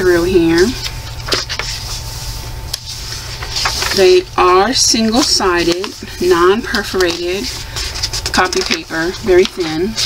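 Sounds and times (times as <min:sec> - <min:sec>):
paper rustle: 0:00.6 - 0:10.0.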